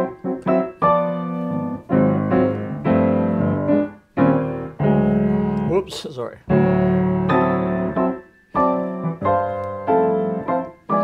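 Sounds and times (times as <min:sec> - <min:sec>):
grand piano chords ringing: 0:00.0 - 0:11.0.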